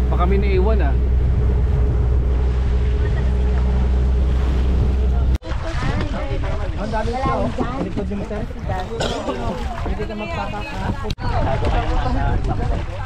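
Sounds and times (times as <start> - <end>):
boat engine running: 0.0 - 13.0
wind on microphone: 0.0 - 13.0
people talking: 5.0 - 13.0.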